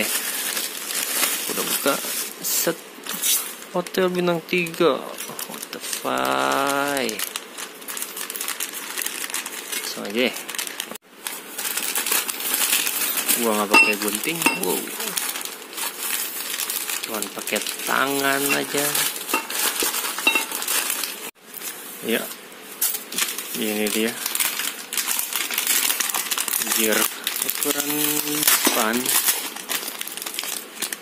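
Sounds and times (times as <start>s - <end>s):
paper parcel crinkling: 0.0s - 4.0s, 4.6s - 31.0s.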